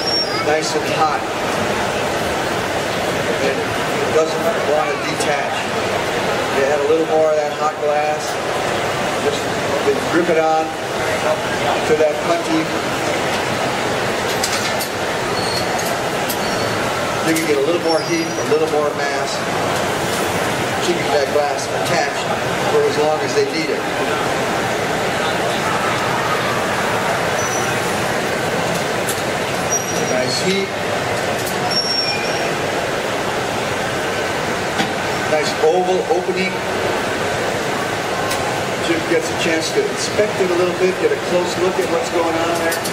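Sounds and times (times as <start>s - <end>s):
gas burners roaring: 0.0s - 42.9s.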